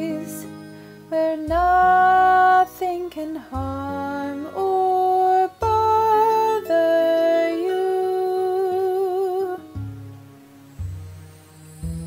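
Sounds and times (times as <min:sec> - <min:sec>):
voice holding long sung notes: 0:00.0 - 0:09.8
low sustained accompaniment: 0:00.0 - 0:12.0.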